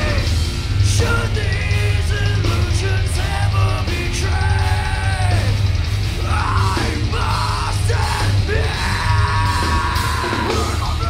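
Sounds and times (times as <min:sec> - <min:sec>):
heavy rock band playing: 0:00.0 - 0:11.0
man yelling vocals: 0:06.2 - 0:11.0.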